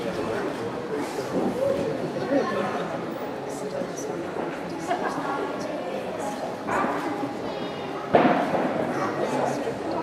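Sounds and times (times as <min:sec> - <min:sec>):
indistinct voices in a hall: 0:00.0 - 0:10.0.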